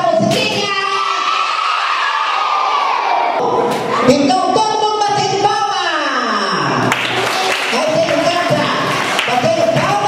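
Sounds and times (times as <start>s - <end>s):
children shouting and cheering: 0.4s - 4.2s.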